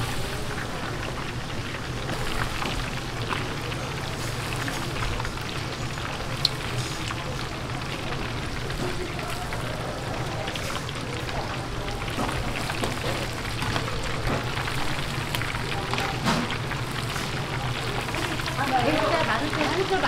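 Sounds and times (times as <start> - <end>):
chicken deep-frying in oil: 0.0 - 20.0.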